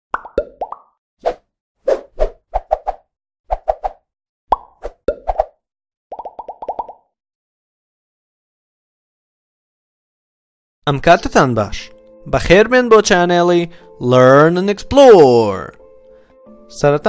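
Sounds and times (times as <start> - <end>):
synthetic pop and bloop effects: 0.1 - 1.0, 4.5 - 7.1.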